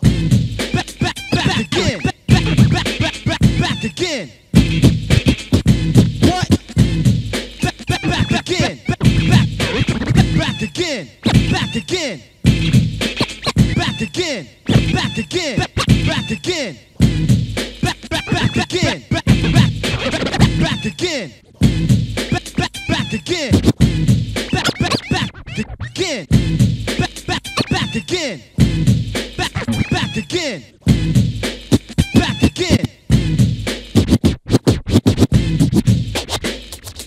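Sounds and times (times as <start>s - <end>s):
backing beat: 0.0s - 37.0s
turntable scratching: 0.0s - 37.0s.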